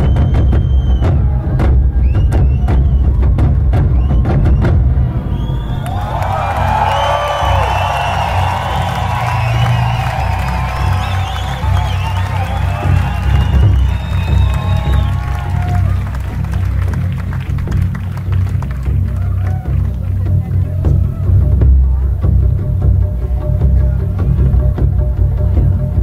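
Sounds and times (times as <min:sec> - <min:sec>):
crowd cheering and whooping: 0:00.0 - 0:20.1
low bass music: 0:00.0 - 0:26.0.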